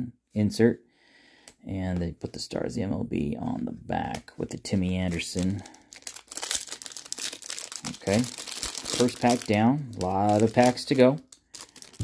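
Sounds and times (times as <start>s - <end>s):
plastic foil wrapper crinkling: 4.9s - 12.0s.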